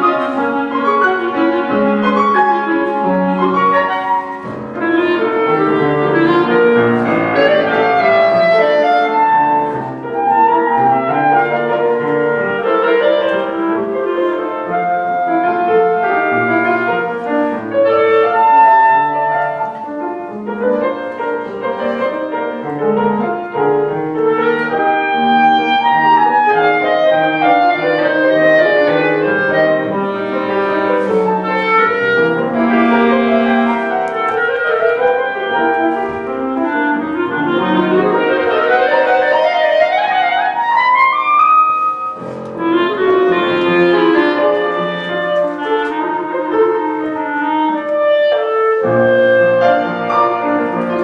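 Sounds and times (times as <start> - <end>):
clarinet melody: 0.0 - 51.0
piano accompaniment: 0.0 - 51.0.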